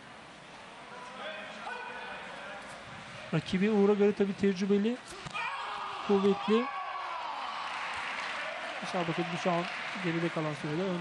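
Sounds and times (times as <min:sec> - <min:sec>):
sports hall background noise: 0:00.0 - 0:11.0.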